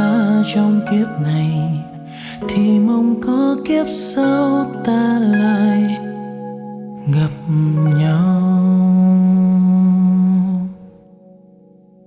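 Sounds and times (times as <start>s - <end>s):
sustained keyboard chord: 0.0s - 12.0s
person singing a long note: 7.0s - 11.0s.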